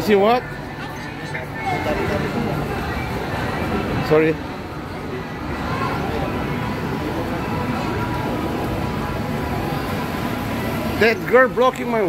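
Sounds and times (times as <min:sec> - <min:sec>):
faint voices: 0:00.0 - 0:12.0
ride train rolling on tiled floor: 0:00.0 - 0:12.0.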